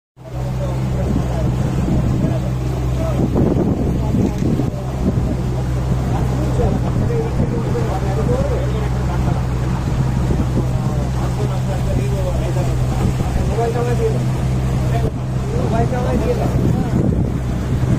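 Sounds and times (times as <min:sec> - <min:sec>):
people talking: 0:00.2 - 0:17.3
outboard motor droning: 0:00.2 - 0:17.9.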